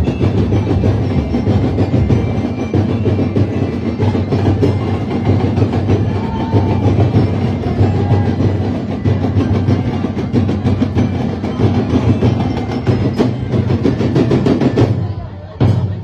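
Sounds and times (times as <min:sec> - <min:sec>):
percussion band drumming: 0:00.0 - 0:16.0.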